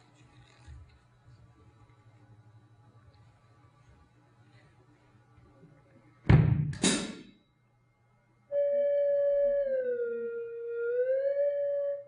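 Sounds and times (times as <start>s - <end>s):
held pitched note sliding down: 8.5s - 12.0s.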